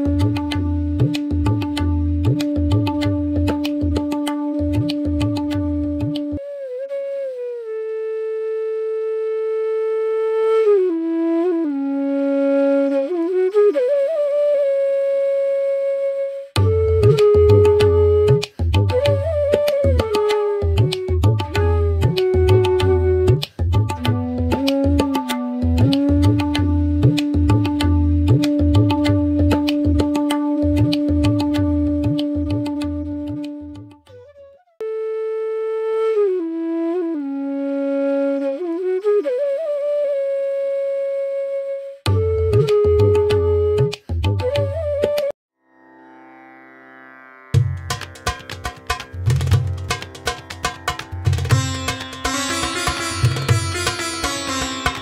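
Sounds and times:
flute holding long note: 0:00.0 - 0:45.4.

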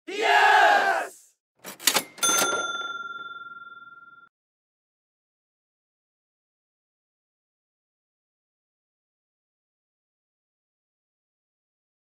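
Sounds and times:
loud yelled voice: 0:00.0 - 0:01.3
bright bell ding: 0:02.0 - 0:04.3.

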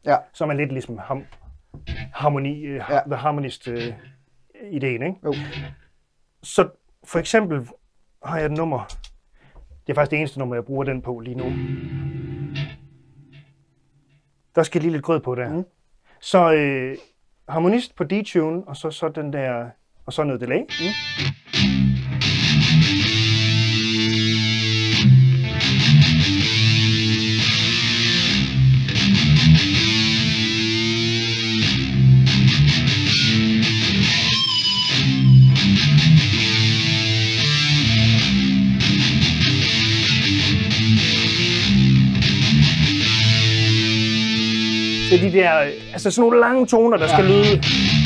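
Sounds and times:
distorted electric guitar: 0:01.8 - 0:02.3, 0:03.6 - 0:04.2, 0:05.2 - 0:05.9, 0:11.3 - 0:14.2, 0:20.7 - 0:48.0.

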